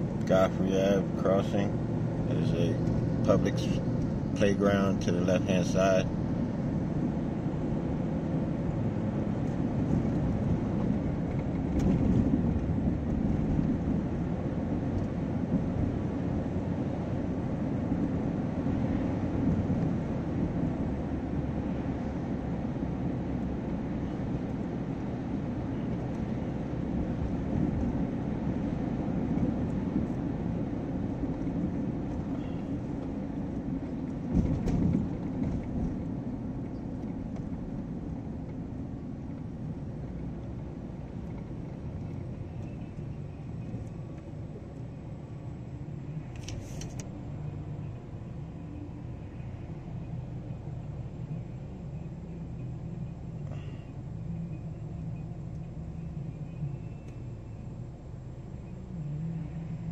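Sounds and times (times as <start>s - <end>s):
road and engine rumble in car: 0.0s - 59.9s.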